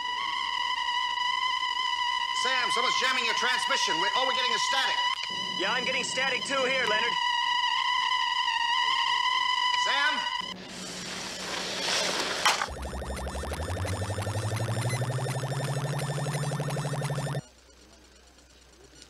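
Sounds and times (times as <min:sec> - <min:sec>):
high electronic tone: 0:12.5 - 0:17.6
rapid pulsing electronic sound: 0:12.6 - 0:18.9
low hum rising in pitch: 0:12.7 - 0:17.4.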